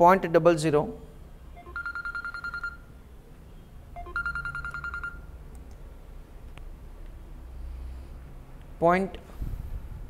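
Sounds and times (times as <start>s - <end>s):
electronic trilling beep: 4.0s - 5.3s.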